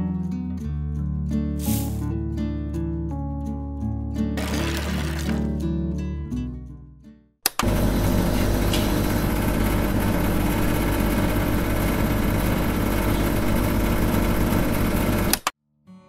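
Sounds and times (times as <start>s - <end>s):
motor switch click: 7.5s - 7.8s, 15.3s - 15.5s.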